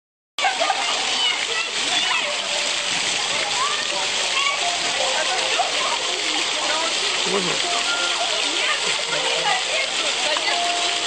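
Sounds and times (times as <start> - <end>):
fountain water splashing on paving: 0.4 - 11.0
people chatting: 0.4 - 11.0.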